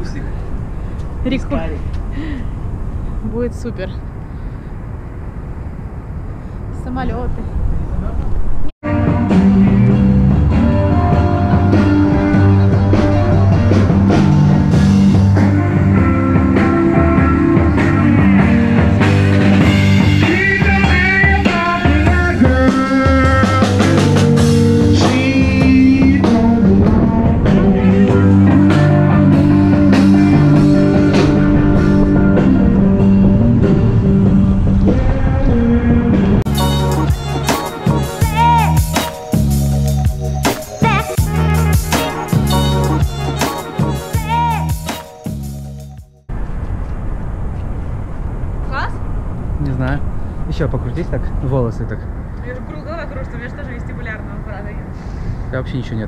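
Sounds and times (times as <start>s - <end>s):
wind buffeting microphone: 0.0s - 8.7s, 25.1s - 36.5s, 46.3s - 56.0s
distant city traffic: 0.0s - 56.0s
rock music with guitar and drums: 8.8s - 35.2s, 35.8s - 46.1s.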